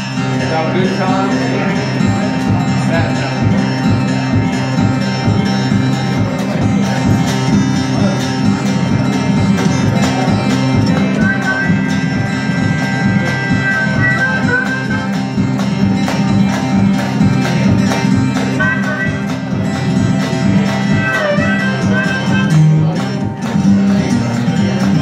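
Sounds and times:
acoustic guitar playing: 0.0s - 25.0s
harmonica long high notes: 0.0s - 25.0s
washboard rhythm: 0.5s - 25.0s.

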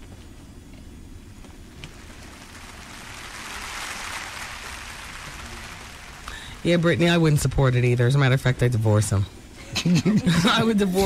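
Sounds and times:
soft even hiss: 1.3s - 8.0s.

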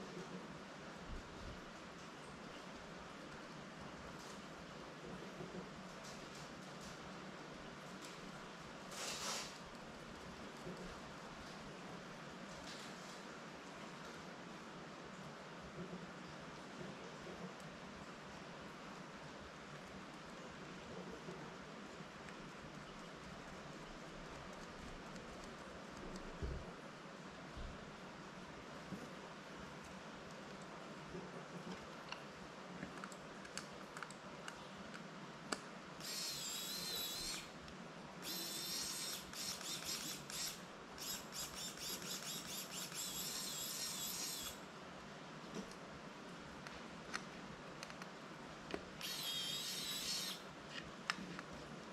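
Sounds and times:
faint steady hiss: 0.0s - 51.9s
electric screwdriver whirring: 36.0s - 37.5s, 38.2s - 44.6s, 49.0s - 50.4s.

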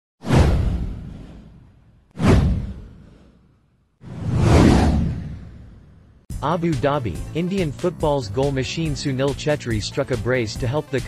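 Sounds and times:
whoosh: 0.2s - 6.3s
deep low rumble: 4.1s - 6.2s.

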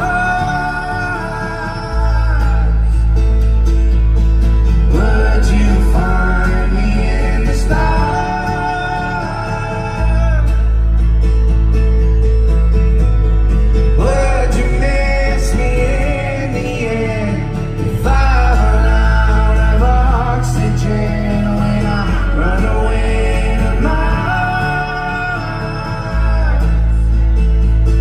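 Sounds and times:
man singing: 0.0s - 3.6s, 4.5s - 11.2s, 13.8s - 28.0s
live pop-rock band playing: 0.0s - 28.0s.

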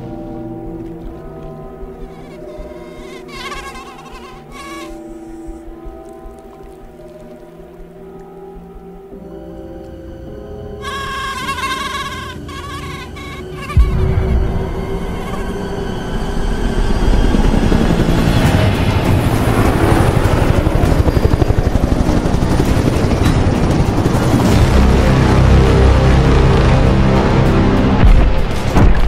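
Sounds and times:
music with wavering tones: 0.0s - 28.8s
helicopter rotor beating: 10.8s - 27.1s.

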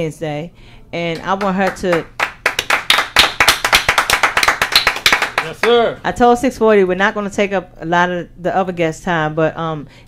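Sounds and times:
hands clapping applause: 1.2s - 5.9s.

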